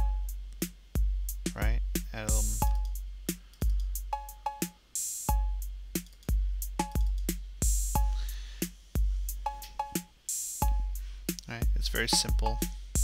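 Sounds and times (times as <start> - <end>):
low kick drums: 0.0 - 4.1, 5.3 - 8.4, 9.0 - 9.5, 10.6 - 13.0
closed hi-hats: 0.0 - 13.0
snare drum: 1.5 - 2.8, 11.9 - 13.0.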